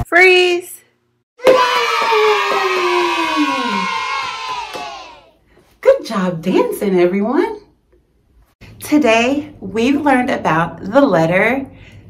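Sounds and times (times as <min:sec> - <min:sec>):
children cheering: 0:01.4 - 0:05.4.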